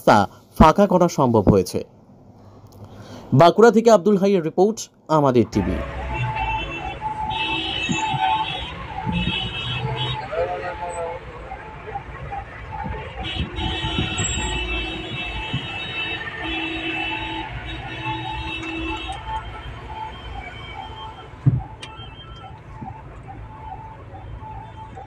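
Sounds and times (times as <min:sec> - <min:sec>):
traffic engine rumble: 0:00.0 - 0:25.0
long horn blasts: 0:05.6 - 0:10.4, 0:13.2 - 0:19.2
thump: 0:21.4 - 0:21.8.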